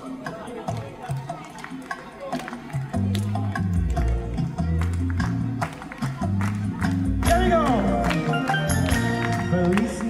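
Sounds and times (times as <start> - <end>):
hand clapping in steady beat: 0.2 - 10.0.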